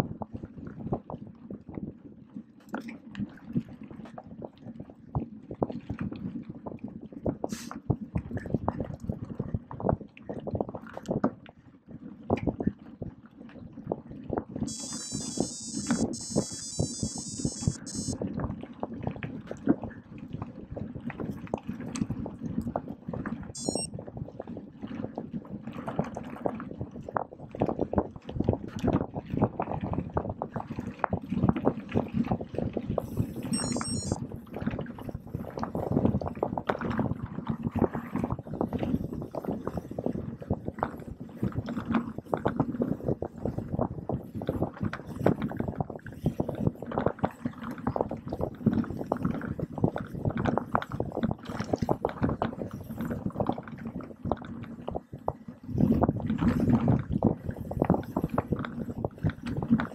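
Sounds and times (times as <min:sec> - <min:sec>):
high-pitched buzzing: 0:14.7 - 0:18.2, 0:23.6 - 0:23.9.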